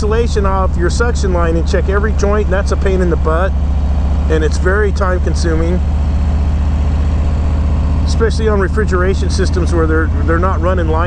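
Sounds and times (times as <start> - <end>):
motorcycle engine running steadily: 0.0 - 11.0.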